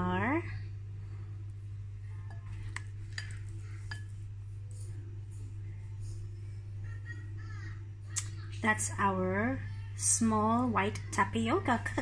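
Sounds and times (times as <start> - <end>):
steady low hum: 0.0 - 12.0
spoon clinking against glass bowl: 2.3 - 4.2.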